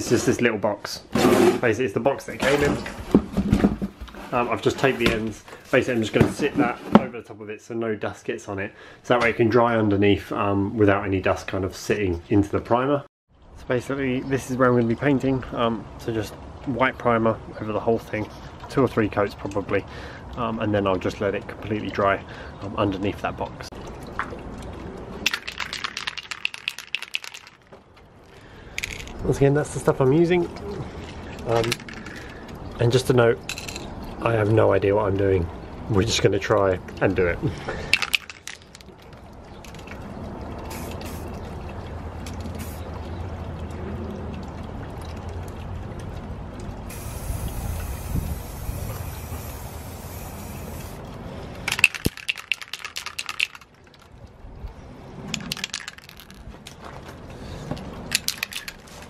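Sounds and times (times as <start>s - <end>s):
aerosol can mixing ball rattling: 25.2s - 27.7s, 37.9s - 38.8s, 51.7s - 54.1s, 55.4s - 56.4s, 58.1s - 59.0s
aerosol spray can hissing: 46.9s - 51.0s.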